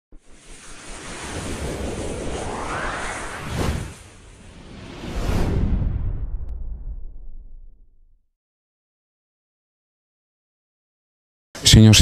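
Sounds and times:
whoosh rush of noise: 0.2 - 8.0.

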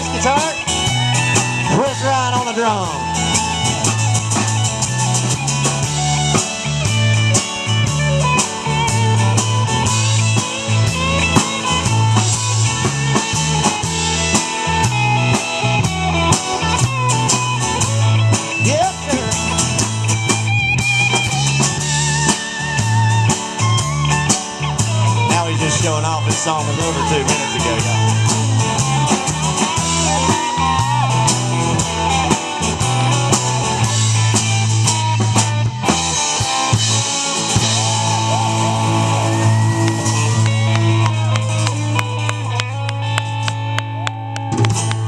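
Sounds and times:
bass guitar line: 0.0 - 45.0
drum kit beat: 0.0 - 45.0
electric and acoustic guitars: 0.0 - 45.0.

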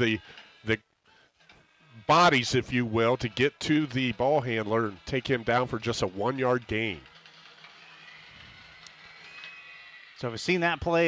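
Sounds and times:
stadium background noise: 0.0 - 0.8, 1.4 - 11.0.

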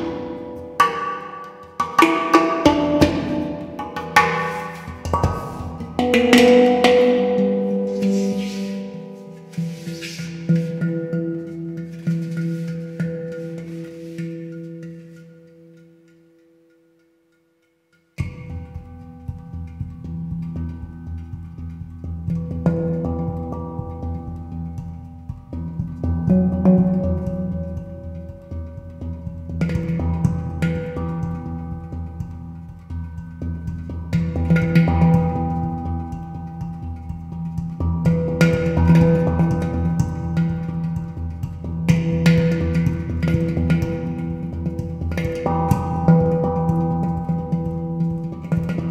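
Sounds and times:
handpan notes ringing: 0.0 - 48.9.

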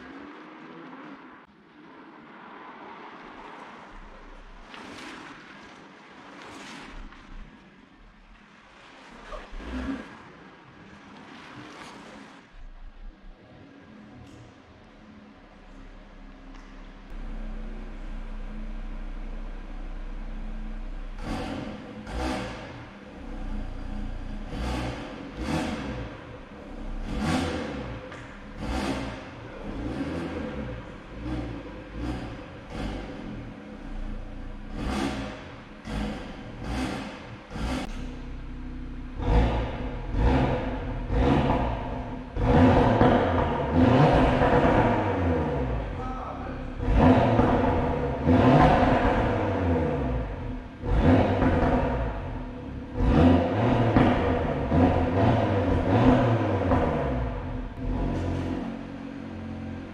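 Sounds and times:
car engine idling and revving: 0.0 - 5.8, 6.4 - 59.9.

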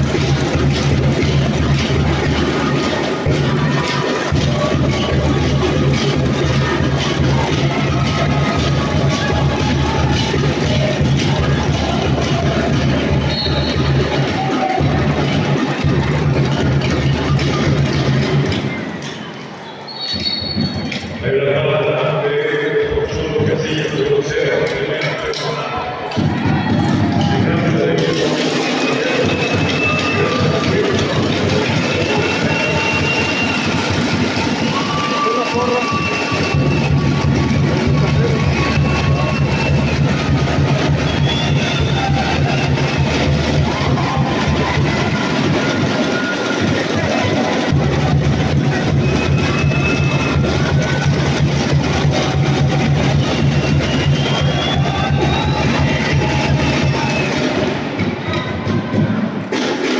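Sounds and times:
music playing: 0.0 - 19.9, 20.5 - 59.7
crowd voices calling out: 0.0 - 59.9.

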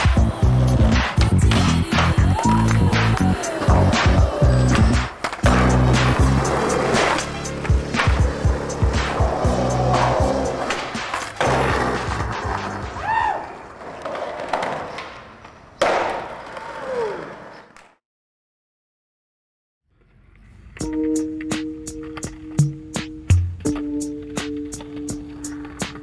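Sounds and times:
skateboard wheels rolling on asphalt: 0.4 - 17.9, 23.5 - 26.0
skateboard landing slap: 4.8 - 6.2, 14.1 - 16.6
skateboard pops and clacks: 5.1 - 6.1, 14.0 - 16.5.

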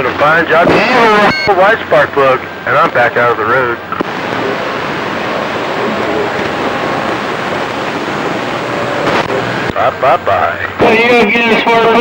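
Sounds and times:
faint garbled radio voices: 0.0 - 12.0
radio static: 0.0 - 12.0.

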